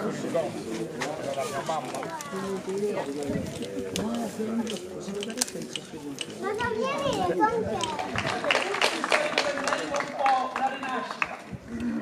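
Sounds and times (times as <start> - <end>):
children talking and calling out: 1.5 - 4.5, 5.8 - 8.5.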